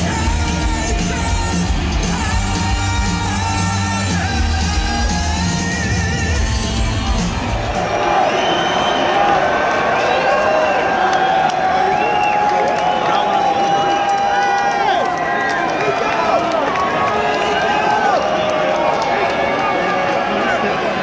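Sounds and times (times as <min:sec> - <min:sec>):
crowd cheering and shouting: 0:00.0 - 0:21.0.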